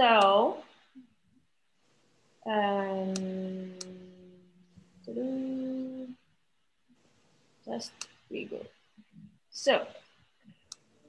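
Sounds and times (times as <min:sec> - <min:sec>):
woman saying um: 0:00.0 - 0:00.6, 0:02.5 - 0:04.3, 0:05.0 - 0:06.2, 0:07.7 - 0:08.7, 0:09.6 - 0:09.9
hummed mmm: 0:02.7 - 0:06.2.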